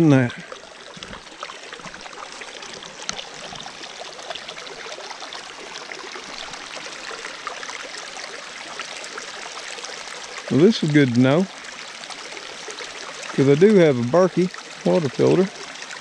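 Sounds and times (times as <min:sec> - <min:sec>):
stream flowing over stones: 0:00.0 - 0:16.0.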